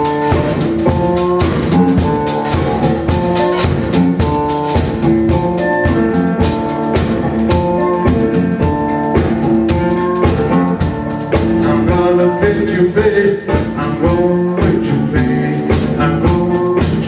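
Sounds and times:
blues electric guitar: 0.0s - 17.0s
drum kit steady beat: 0.0s - 17.0s.

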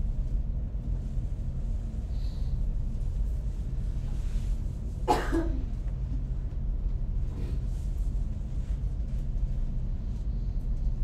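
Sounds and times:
steady low hum: 0.0s - 11.0s
person coughing: 5.1s - 5.7s.

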